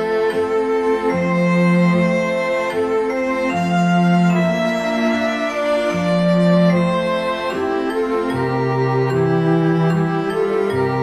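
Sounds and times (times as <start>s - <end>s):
soft instrumental lullaby music: 0.0s - 11.0s.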